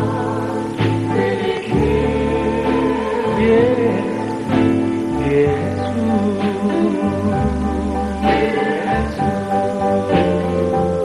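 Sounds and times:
vocal group singing harmony: 0.0 - 11.0.

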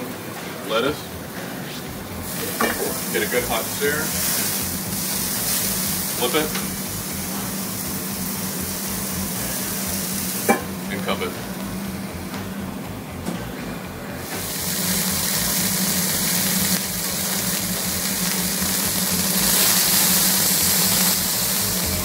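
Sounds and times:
low steady hum: 0.0 - 22.0
patty sizzling on griddle: 0.7 - 11.4, 14.2 - 22.0.

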